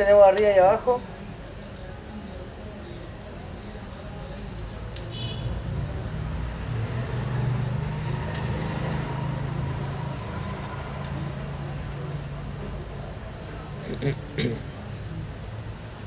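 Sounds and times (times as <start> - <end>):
passing vehicle engine hum: 5.6 - 13.8.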